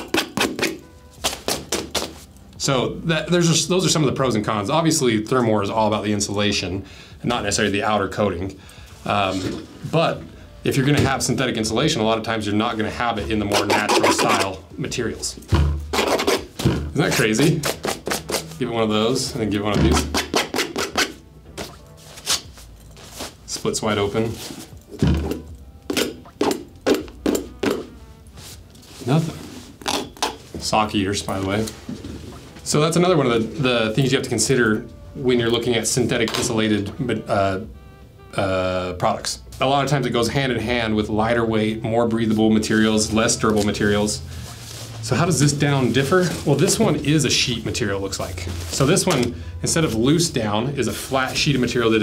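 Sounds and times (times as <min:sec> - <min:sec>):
sharp point scraping leather: 0:00.0 - 0:02.2, 0:13.5 - 0:14.5, 0:15.9 - 0:16.6, 0:17.4 - 0:18.6, 0:19.8 - 0:23.3
knife scraping fabric: 0:13.5 - 0:14.5, 0:15.9 - 0:16.5, 0:19.9 - 0:21.2.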